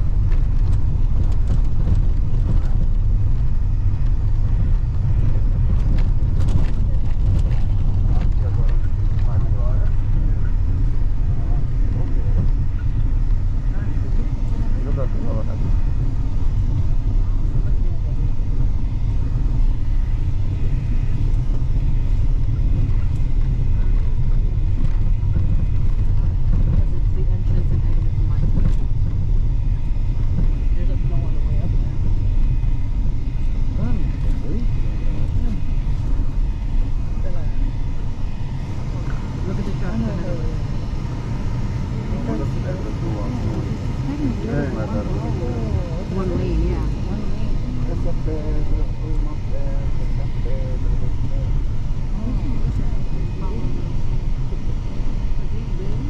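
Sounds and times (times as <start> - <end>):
car engine and tyres rumbling: 0.0 - 56.0
faint voices talking: 2.1 - 56.0.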